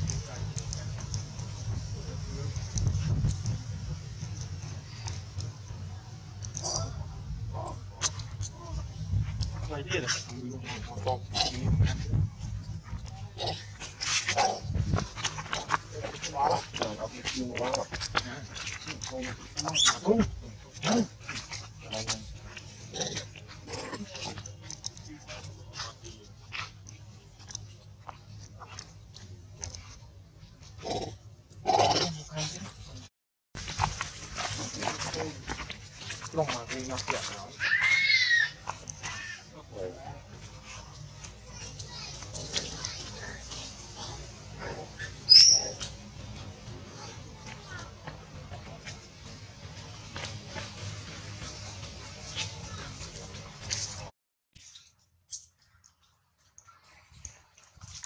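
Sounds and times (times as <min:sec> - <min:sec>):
macaque calls and squeals: 0:19.6 - 0:20.1, 0:37.5 - 0:39.5, 0:45.0 - 0:45.9.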